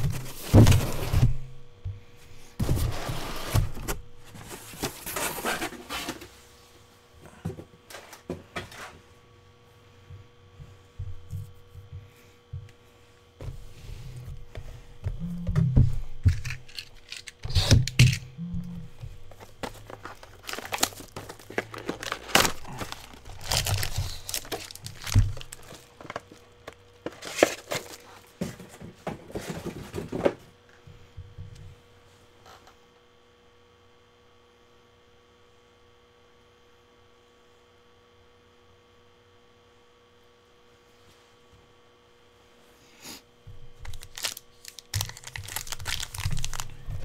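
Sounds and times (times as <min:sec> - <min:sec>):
cardboard boxes thudding: 0:00.0 - 0:01.5
faint electrical hum: 0:00.0 - 0:47.0
plastic shrink-wrap tearing: 0:16.3 - 0:18.2, 0:19.6 - 0:26.4, 0:43.8 - 0:46.9.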